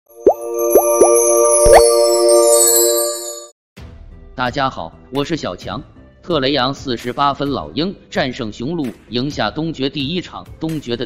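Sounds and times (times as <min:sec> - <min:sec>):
held bright synth chord: 0:00.1 - 0:03.5
rising synth bloops: 0:00.2 - 0:02.2.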